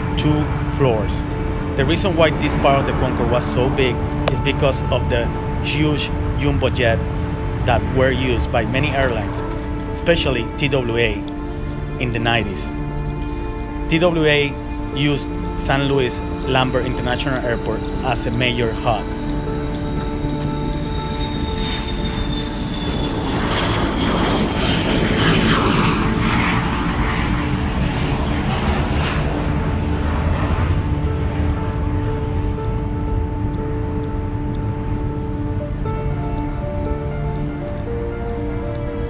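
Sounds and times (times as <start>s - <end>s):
background music: 0.0s - 39.0s
high whine sliding down: 0.0s - 39.0s
jet aircraft engine noise: 0.0s - 39.0s.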